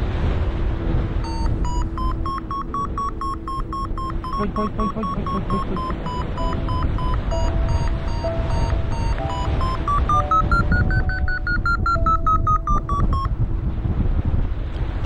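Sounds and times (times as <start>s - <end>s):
wind on microphone: 0.0s - 15.0s
low held electronic tone: 0.6s - 13.5s
variometer beeping: 1.2s - 13.4s.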